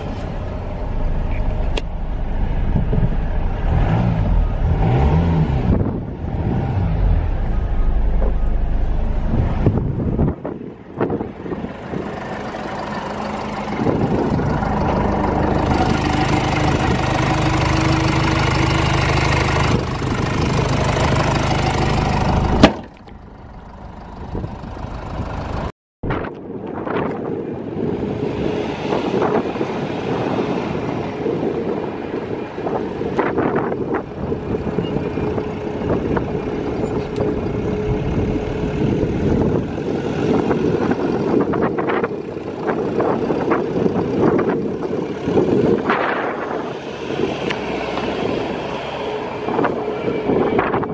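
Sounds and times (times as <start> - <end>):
diesel engine running: 0.0 - 25.7, 27.6 - 50.9
van driving slowly: 0.0 - 25.7, 27.2 - 50.2.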